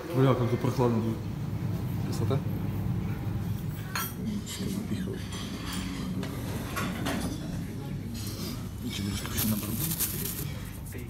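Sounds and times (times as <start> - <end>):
low room hum: 0.0 - 11.0
dishes and cutlery clinking: 3.7 - 10.6.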